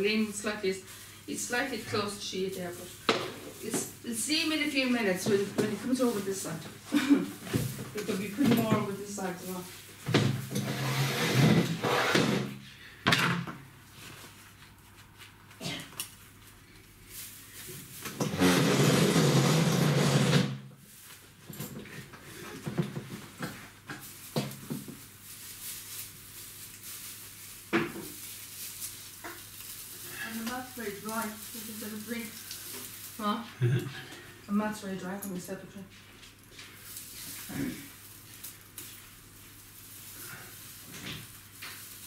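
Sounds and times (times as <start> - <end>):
tinsel garland rustling: 0.0 - 11.2, 13.8 - 19.6, 20.8 - 33.6, 34.2 - 42.0.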